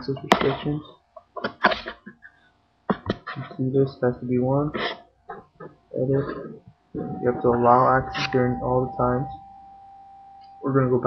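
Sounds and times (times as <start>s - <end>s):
person sneezing: 4.7s - 5.0s.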